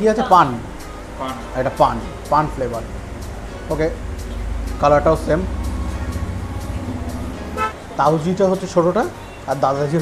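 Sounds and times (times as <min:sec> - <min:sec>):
road traffic rumble: 0:00.0 - 0:10.0
faint held horn: 0:07.5 - 0:07.8.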